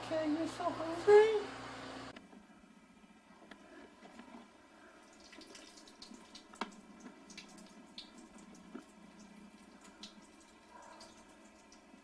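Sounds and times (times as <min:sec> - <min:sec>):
water trickling and dripping: 0:04.8 - 0:12.0.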